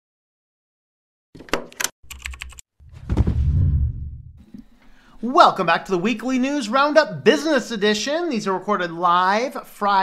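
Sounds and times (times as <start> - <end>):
low hit with rumble: 2.9 - 4.4.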